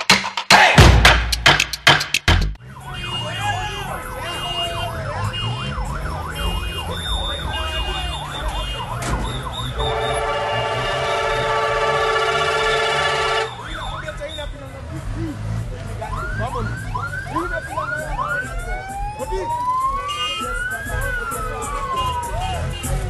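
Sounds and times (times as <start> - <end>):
multi-tone horn blaring: 2.6 - 14.1, 19.9 - 20.7, 21.7 - 23.0
electronic siren yelping: 2.7 - 14.2, 16.0 - 22.7.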